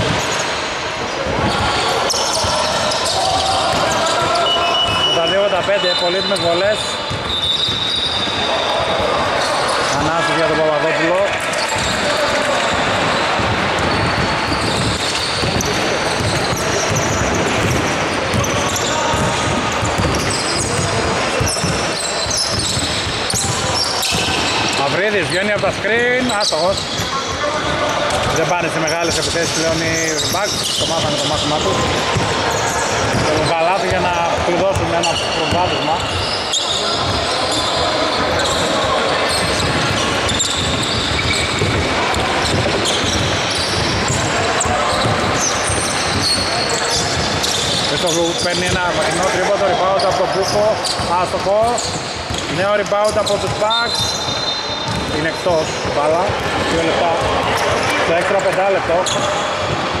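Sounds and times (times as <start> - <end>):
players' voices and shouts: 0.0 - 60.0
basketball bouncing on hardwood: 12.9 - 24.3, 31.7 - 32.4, 33.0 - 34.0, 39.5 - 46.3, 54.9 - 55.1.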